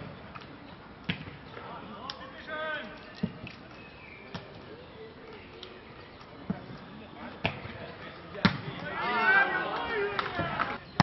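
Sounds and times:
ball being hit and bouncing: 0.0 - 1.5, 3.1 - 3.6, 6.4 - 9.0
players calling out: 4.2 - 10.9.

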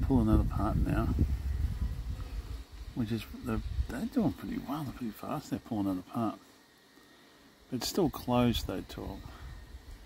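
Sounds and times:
wind buffeting microphone: 0.0 - 4.4.

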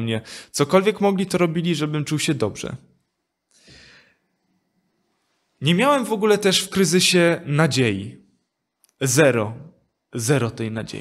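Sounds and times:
man breathing in: 3.5 - 4.4.

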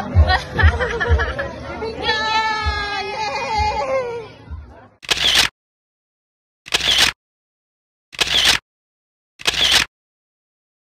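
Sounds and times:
camera shutter click and whir: 5.0 - 5.5, 6.7 - 7.2, 8.2 - 8.6, 9.4 - 9.9.

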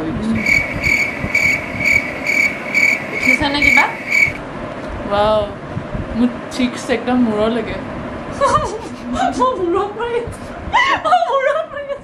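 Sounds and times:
high-pitched chirping: 0.4 - 4.4.

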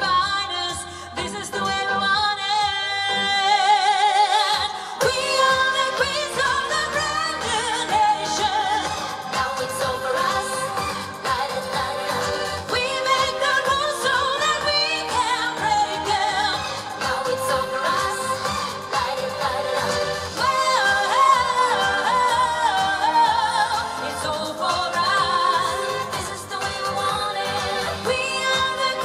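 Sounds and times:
electronic backing track: 0.0 - 29.0
woman singing: 0.0 - 29.0.

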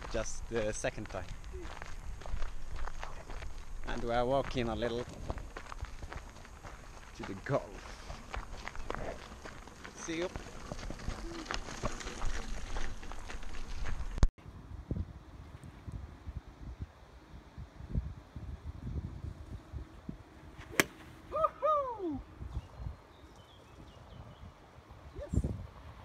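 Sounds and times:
footsteps on gravel: 0.0 - 14.2
golf club striking ball: 20.6 - 21.2.

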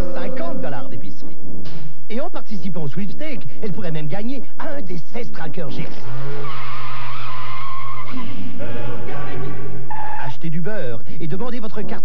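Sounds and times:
steady low drone: 0.0 - 1.7
tires squealing: 6.0 - 9.2, 9.8 - 10.4.

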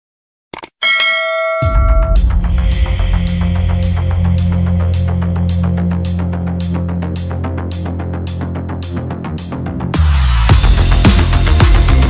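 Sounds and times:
bell chime: 0.8 - 3.0
bass-heavy background music: 1.6 - 12.0.

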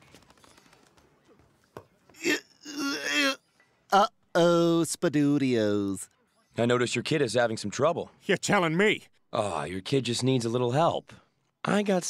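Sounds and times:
cartoon toddler grunting: 2.2 - 3.4.

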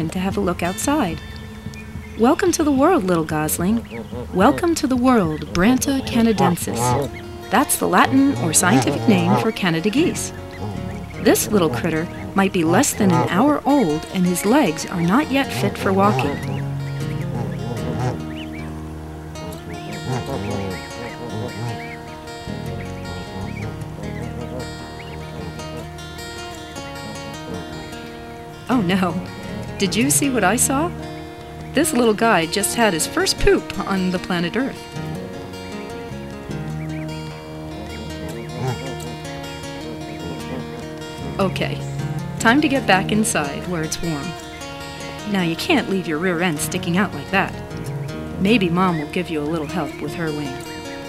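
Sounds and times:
background music: 0.0 - 51.0
goslings peeping: 0.0 - 51.0.

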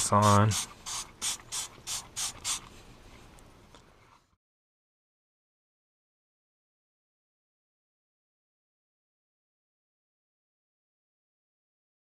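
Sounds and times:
faint spray hiss: 0.0 - 4.4
spray bottle squirts: 0.2 - 2.7.

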